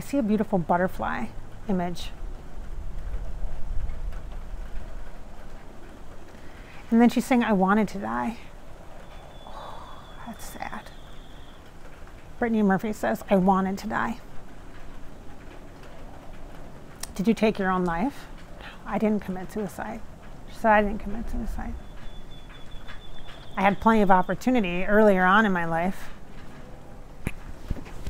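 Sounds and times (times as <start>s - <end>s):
outdoor background hiss: 0.0s - 28.0s
wind buffeting microphone: 0.0s - 28.0s
low rumble: 1.2s - 7.0s.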